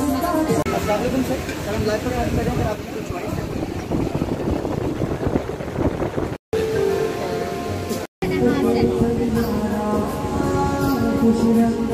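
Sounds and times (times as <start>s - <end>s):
crowd chatter: 0.0s - 5.6s, 6.6s - 11.9s
music with held notes: 6.6s - 11.9s.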